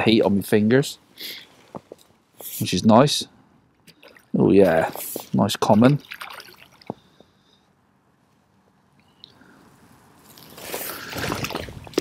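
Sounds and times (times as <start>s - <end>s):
water splashing and dripping: 3.9s - 7.0s, 10.4s - 12.0s.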